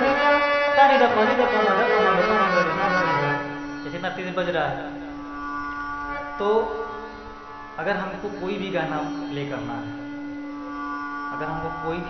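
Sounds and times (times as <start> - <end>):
harmonium reed notes: 0.0 - 12.0
low drone tone: 0.0 - 12.0.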